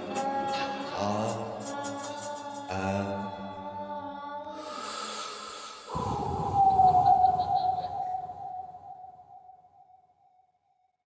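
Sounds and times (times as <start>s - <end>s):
chant-like music: 0.0s - 8.7s.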